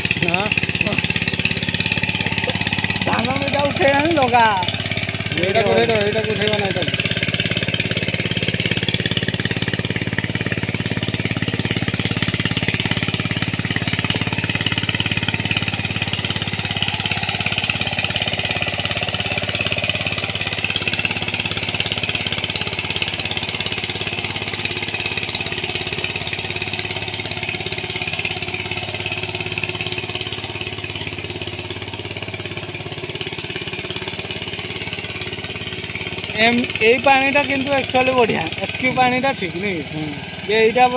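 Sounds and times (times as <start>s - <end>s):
tiller diesel engine running: 0.0s - 40.9s.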